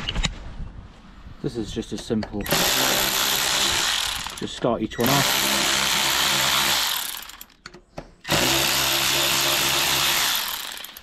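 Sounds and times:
power drill spinning: 0:02.4 - 0:07.6, 0:08.2 - 0:11.0.

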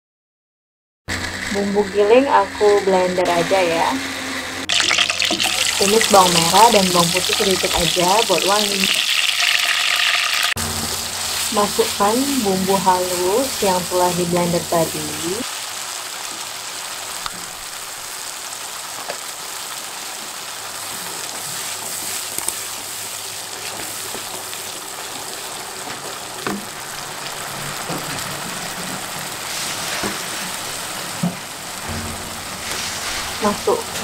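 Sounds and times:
spice paste sizzling in oil: 0:04.7 - 0:34.0.

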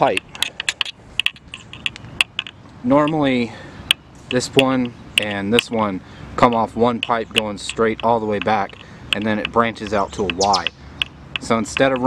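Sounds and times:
light clicks and ticks: 0:00.0 - 0:12.0.

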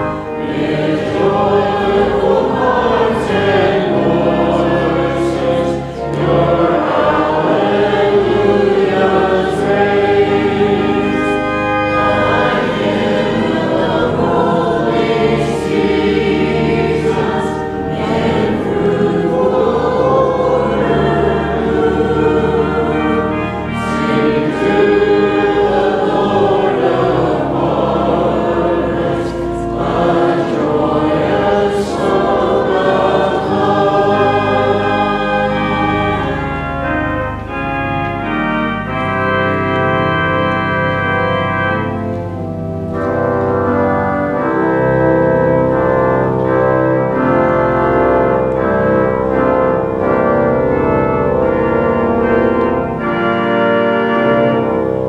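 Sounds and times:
group singing a hymn: 0:00.0 - 0:55.0.

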